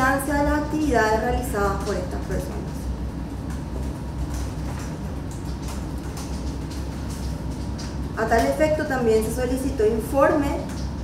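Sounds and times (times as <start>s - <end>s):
low room rumble and hiss: 0.0s - 11.0s.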